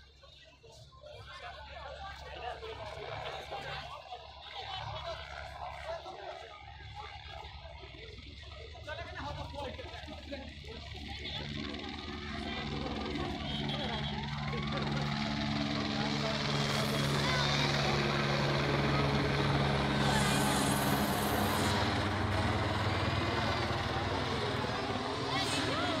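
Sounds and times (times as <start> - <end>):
helicopter flying overhead: 0.0 - 26.0.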